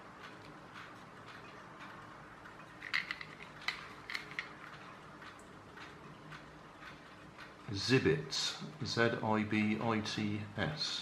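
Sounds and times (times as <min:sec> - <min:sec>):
plastic toy being handled: 0:02.8 - 0:04.6.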